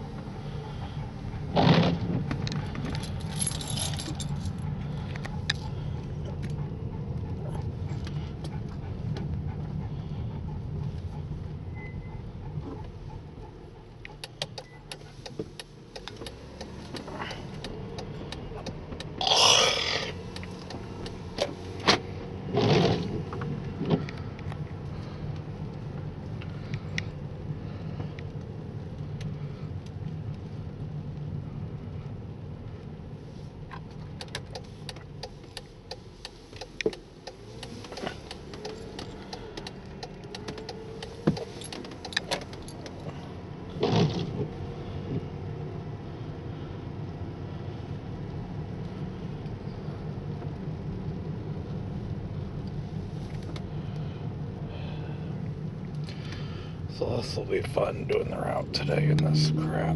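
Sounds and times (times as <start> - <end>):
tyres swishing on wet road: 0.0 - 3.2, 15.0 - 59.9
car engine and tyre drone: 0.0 - 59.9
road hiss: 19.2 - 23.2.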